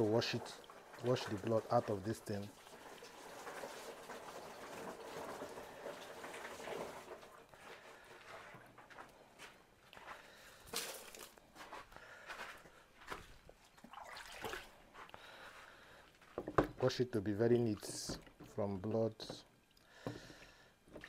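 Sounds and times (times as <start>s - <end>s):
person speaking: 0.0s - 2.5s, 16.7s - 19.5s
small splashes in water: 13.6s - 15.1s.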